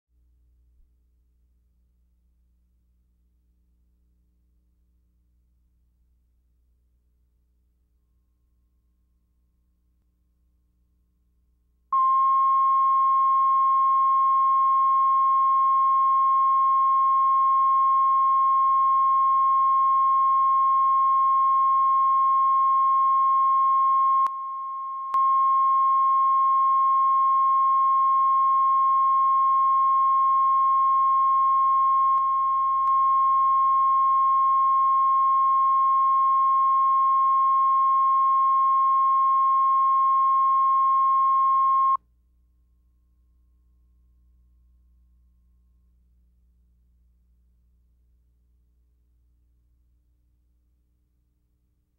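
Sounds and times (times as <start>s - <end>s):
sine test tone: 11.9s - 42.0s.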